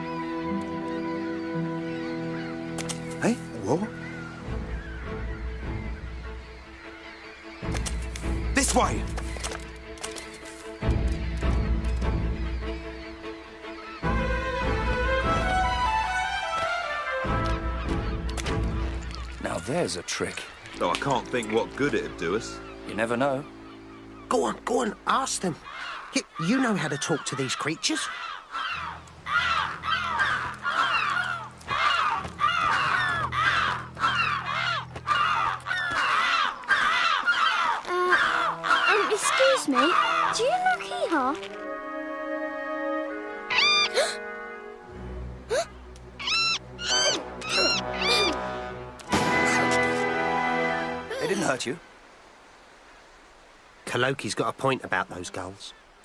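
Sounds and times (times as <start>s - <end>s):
background music: 0.0s - 36.4s, 37.9s - 51.8s
gulls calling: 0.0s - 56.0s
cartoon seagull squawk: 25.5s - 41.4s, 43.5s - 44.2s, 46.2s - 48.5s.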